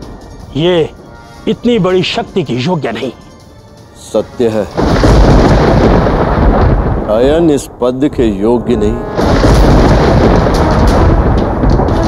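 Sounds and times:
loud thunder-like rumble: 0:04.8 - 0:12.0.

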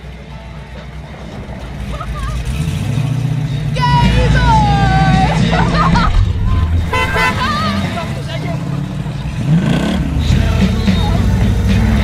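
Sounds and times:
car engine approaching: 0:00.0 - 0:12.0
car horn toot: 0:06.8 - 0:08.2.

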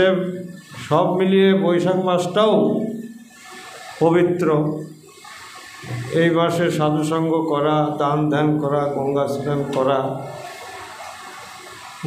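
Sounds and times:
man speaking: 0:00.0 - 0:03.0, 0:04.0 - 0:04.9, 0:05.9 - 0:10.4
steady background hiss: 0:00.0 - 0:12.0.

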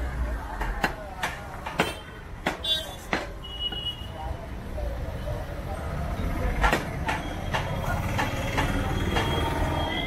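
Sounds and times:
cleaver chopping meat on wood: 0:00.6 - 0:03.4.

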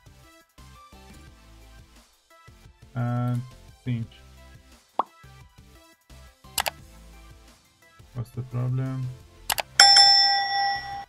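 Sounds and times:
quiet background music: 0:00.8 - 0:11.0.

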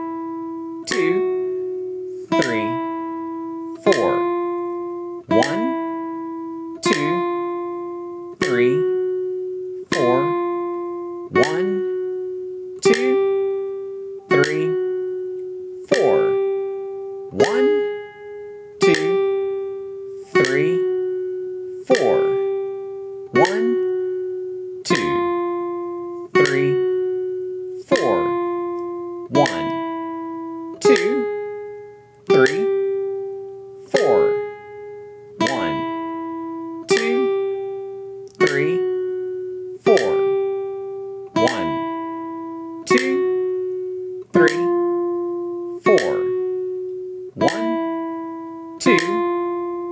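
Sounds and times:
classical guitar plucked notes: 0:00.0 - 0:49.9.

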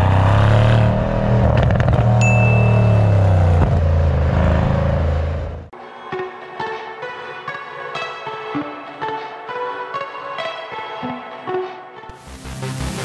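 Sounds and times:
car exhaust under acceleration: 0:00.0 - 0:05.7.

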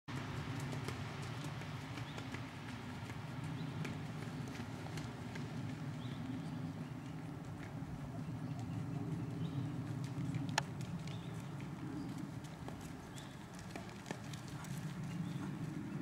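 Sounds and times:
hoofbeats on sand: 0:00.1 - 0:16.0
steady low rumble: 0:01.8 - 0:13.6.

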